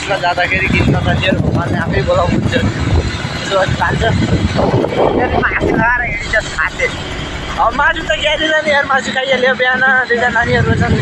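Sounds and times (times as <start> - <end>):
wind rushing on microphone: 0.0 - 8.7, 10.4 - 11.0
motorbike engine and road rumble: 0.0 - 9.2
person talking: 4.9 - 7.0.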